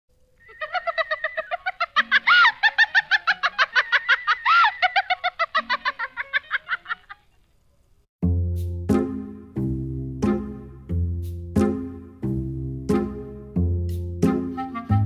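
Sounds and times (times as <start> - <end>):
rapid bird-like chirping: 0.1 - 2.0
swooping calls: 0.2 - 3.1.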